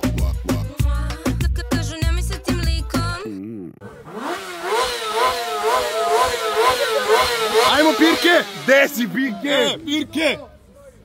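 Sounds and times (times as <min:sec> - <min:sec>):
motorcycle engine revving: 0:03.8 - 0:10.0.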